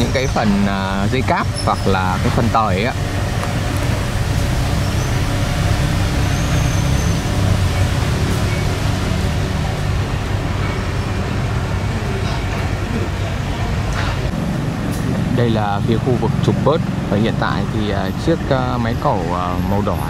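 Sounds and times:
low diesel drone of machinery: 0:00.0 - 0:20.0.

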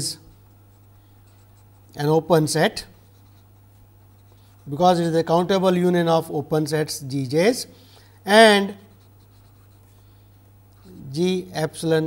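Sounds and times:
pen scratching on paper: 0:00.7 - 0:02.0, 0:03.0 - 0:04.8, 0:08.7 - 0:10.0.

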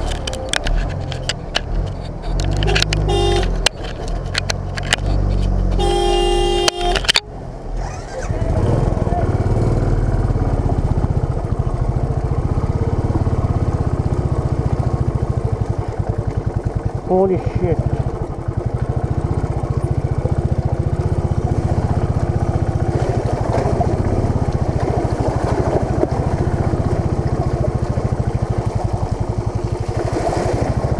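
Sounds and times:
bus engine drone: 0:00.0 - 0:30.9
single-cylinder motorcycle engine: 0:00.0 - 0:30.9
bus horn: 0:02.5 - 0:03.7, 0:05.7 - 0:07.3
motorcycle jolting over mud track: 0:07.0 - 0:30.9.

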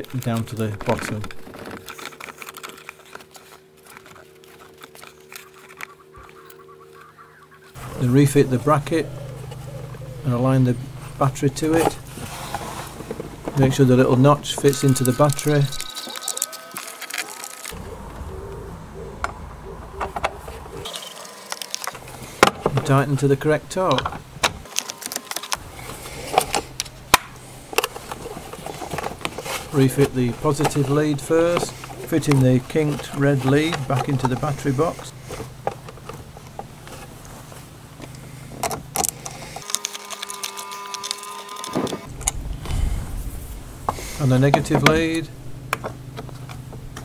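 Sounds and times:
steady hum: 0:00.1 - 0:16.4, 0:17.6 - 0:39.7, 0:41.6 - 0:47.0
low steady rumble: 0:02.7 - 0:15.9, 0:17.8 - 0:20.9, 0:42.0 - 0:47.0.

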